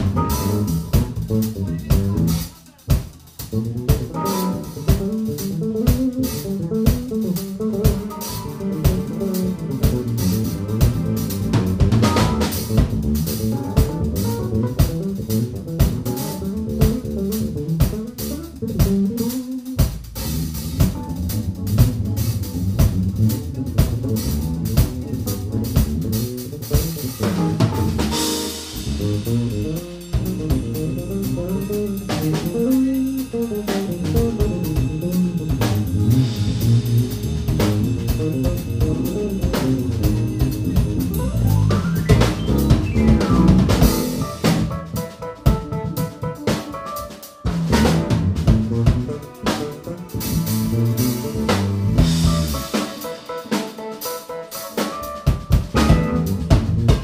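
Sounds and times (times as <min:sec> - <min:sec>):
bass guitar playing: 0:00.0 - 0:57.0
drum kit: 0:00.0 - 0:57.0.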